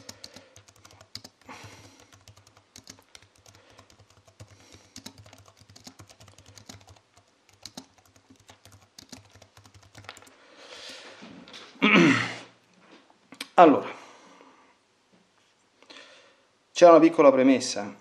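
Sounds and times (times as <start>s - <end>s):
keyboard keys typing: 0.0s - 11.0s.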